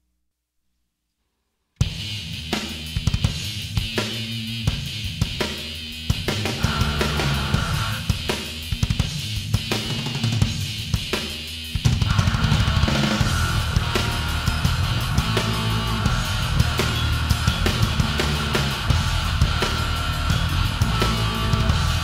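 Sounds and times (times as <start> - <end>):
drums and bass: 1.8 - 22.0
heavy metal band with distorted guitars: 1.9 - 22.0.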